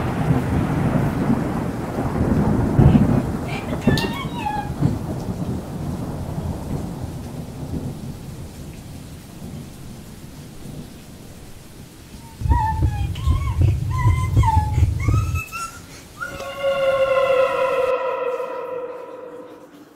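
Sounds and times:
rolling thunder: 0.0 - 11.6, 12.2 - 19.9
rain: 0.0 - 19.9
faint high sliding sound: 16.2 - 19.9.

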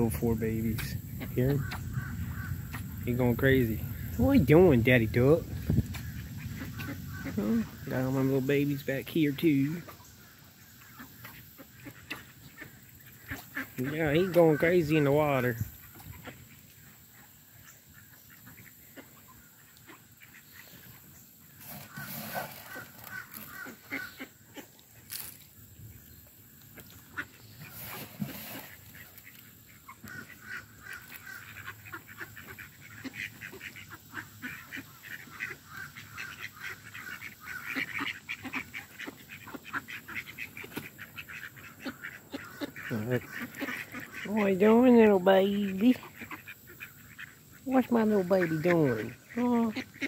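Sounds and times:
ducks quacking: 0.0 - 25.3, 26.6 - 50.0
geese honking: 0.0 - 25.3, 26.7 - 50.0.

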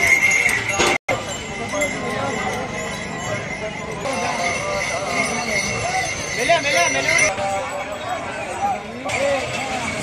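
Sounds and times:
bells jingling: 0.0 - 10.0
crowd voices: 0.0 - 10.0.

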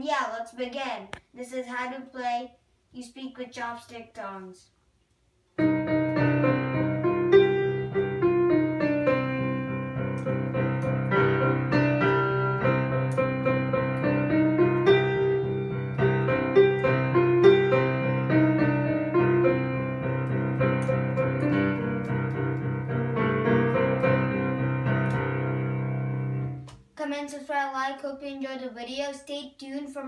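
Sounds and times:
digital piano melody: 5.6 - 26.7.

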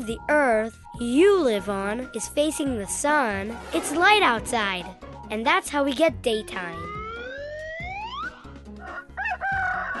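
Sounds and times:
light background music: 0.0 - 10.0
cartoon rooster crowing: 8.8 - 10.0.

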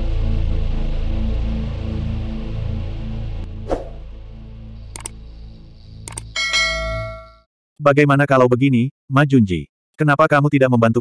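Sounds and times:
mouse clicks: 5.0 - 5.2, 6.1 - 6.4
bright bell ding: 6.4 - 7.5.

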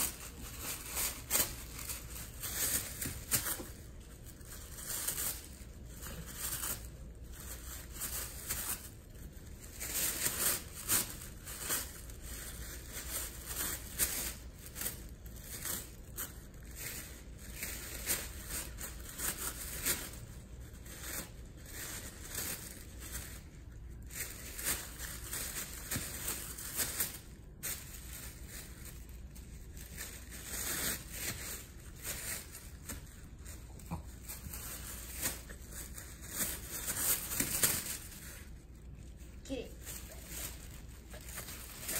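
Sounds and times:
dog tearing tissue paper: 0.0 - 41.9.

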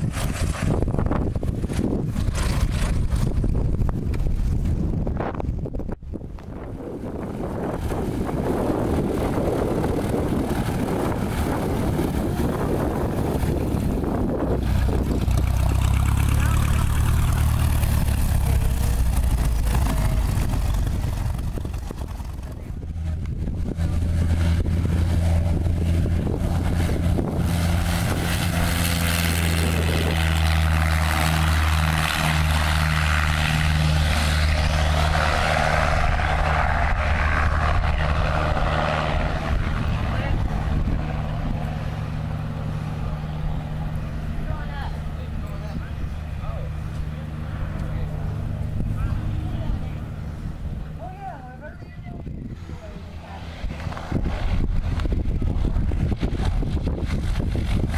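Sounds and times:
light aircraft engine droning: 0.0 - 57.9
wind buffeting microphone: 0.0 - 57.9.

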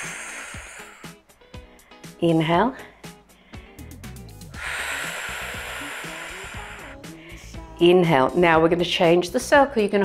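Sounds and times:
woman breathing out: 0.0 - 2.2, 2.8 - 7.7
soft background music: 0.0 - 10.0.

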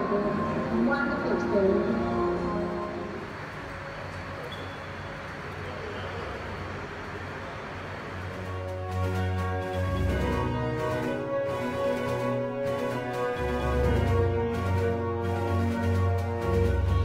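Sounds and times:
film soundtrack voices and music: 0.0 - 5.4
steady noisy rumble: 0.0 - 17.0.

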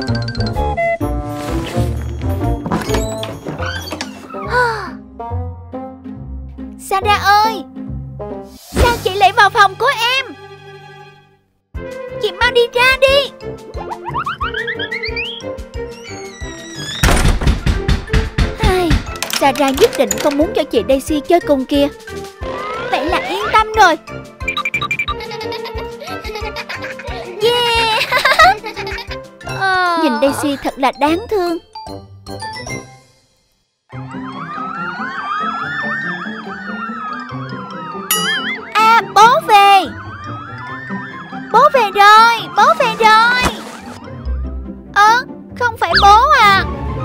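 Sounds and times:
cartoon background music: 0.0 - 47.0
heavy thuds: 17.0 - 19.2
long rising and falling tone: 33.9 - 39.2, 39.9 - 41.5
electronic siren-like warble: 34.0 - 39.2, 39.9 - 41.5.

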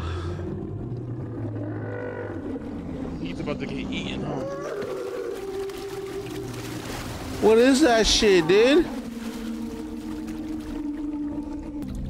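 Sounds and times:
long steady low tone: 0.0 - 4.0.

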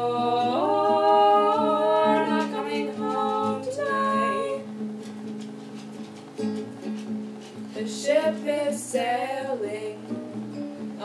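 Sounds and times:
women singing in harmony: 0.0 - 4.7, 7.8 - 10.1
strummed acoustic guitar: 0.0 - 11.0.

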